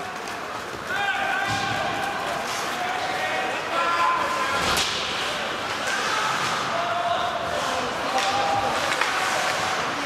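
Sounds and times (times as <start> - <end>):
voices calling out in rink: 0.0 - 10.0.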